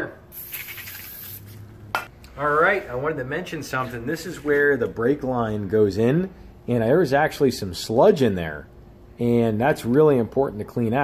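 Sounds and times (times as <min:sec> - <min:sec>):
aerosol can spraying hiss: 0:00.3 - 0:01.5.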